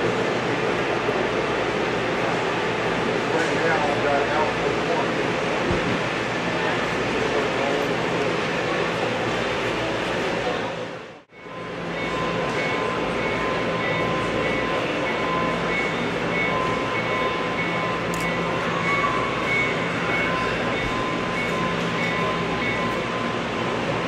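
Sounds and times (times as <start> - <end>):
steady background noise: 0.0 - 24.0
model train hum with pulsing tone: 11.3 - 24.0.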